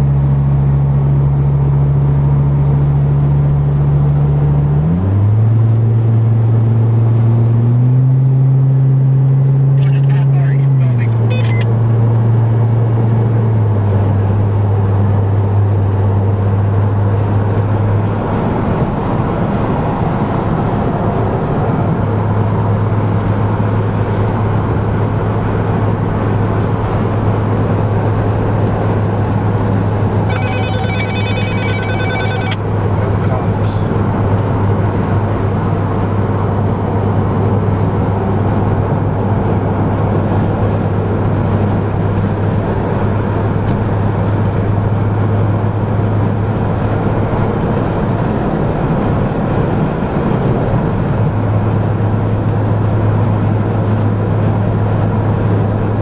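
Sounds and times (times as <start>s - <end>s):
car engine drone: 0.0s - 56.0s
electronic ringing tone: 10.8s - 11.7s, 30.2s - 32.7s.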